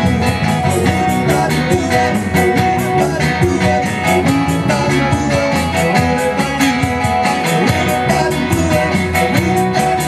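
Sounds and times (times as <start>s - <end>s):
bass guitar: 0.0s - 10.0s
drum kit beat: 0.0s - 10.0s
guitars: 0.0s - 10.0s.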